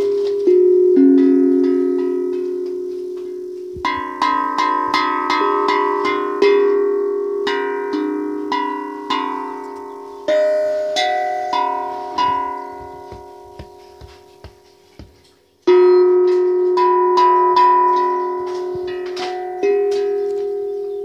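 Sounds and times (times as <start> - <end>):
hand-pan drum ringing notes: 0.0 - 21.0.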